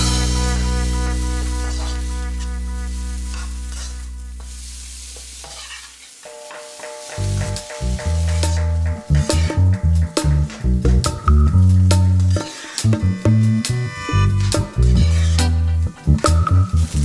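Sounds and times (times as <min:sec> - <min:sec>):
background music: 0:00.0 - 0:04.6, 0:06.3 - 0:17.0
vegetables sizzling in a pan: 0:01.4 - 0:09.7, 0:16.5 - 0:17.0
metal spatula scraping pan: 0:01.6 - 0:04.6, 0:05.2 - 0:09.7, 0:12.2 - 0:13.0, 0:13.8 - 0:15.8.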